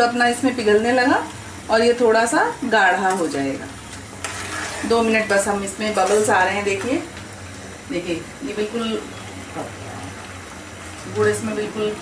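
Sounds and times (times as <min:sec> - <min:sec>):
chutney bubbling in a pan: 0:00.0 - 0:12.0.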